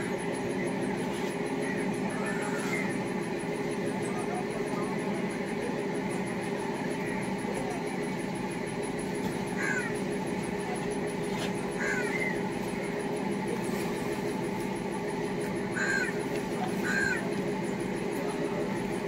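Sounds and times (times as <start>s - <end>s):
low mechanical drone: 0.0s - 19.0s
crow cawing: 9.6s - 10.0s, 11.7s - 12.5s, 15.7s - 16.2s, 16.8s - 17.3s.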